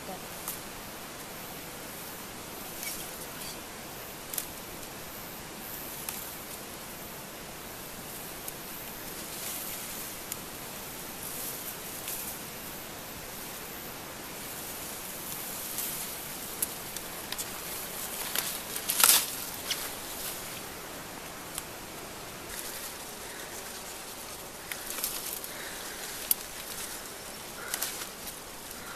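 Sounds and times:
steady outdoor hiss: 0.0s - 28.9s
plants rustling and clicking: 4.2s - 5.0s, 5.9s - 6.8s, 15.2s - 28.9s.

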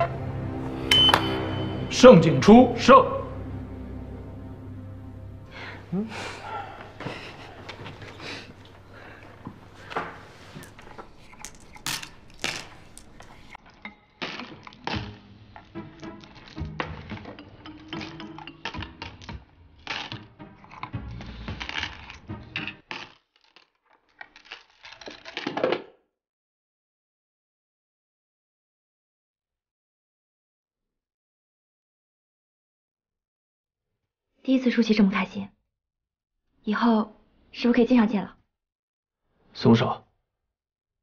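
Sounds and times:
soft background music: 0.0s - 22.8s
game stones clacking: 10.5s - 13.6s.

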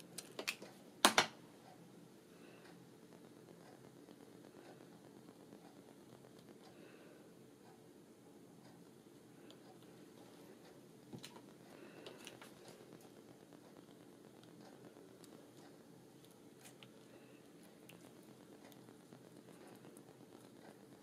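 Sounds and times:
paper clicks and crackles: 0.0s - 1.3s, 11.1s - 21.0s
faint room hum: 0.0s - 21.0s.

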